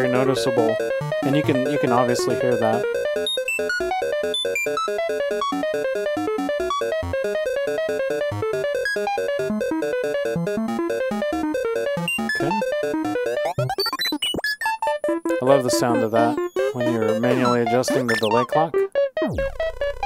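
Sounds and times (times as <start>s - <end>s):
delay clock noise: 0.0s - 20.0s
gritty synthesizer notes with delay: 0.0s - 20.0s.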